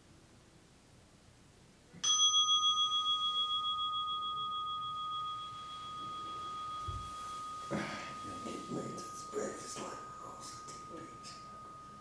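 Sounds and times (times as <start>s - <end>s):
meditation bell ringing: 2.0s - 12.0s.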